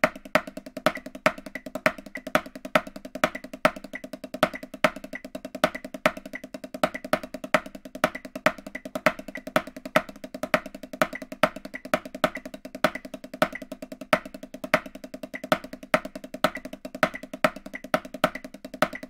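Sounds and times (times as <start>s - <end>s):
snare drum played with sticks: 0.0s - 19.0s.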